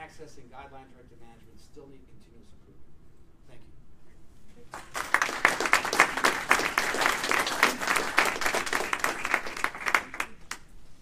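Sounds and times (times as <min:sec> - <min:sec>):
audience applauding: 0:04.7 - 0:10.6.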